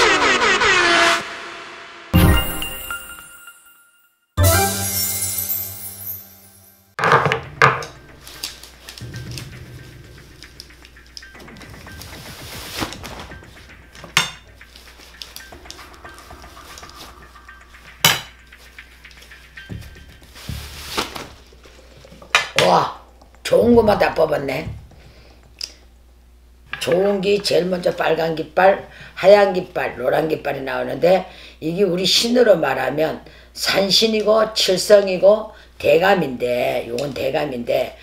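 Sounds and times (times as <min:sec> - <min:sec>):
wooden sticks clacking: 0:07.0 - 0:25.9
cloth rustling: 0:11.9 - 0:15.5, 0:18.5 - 0:22.2.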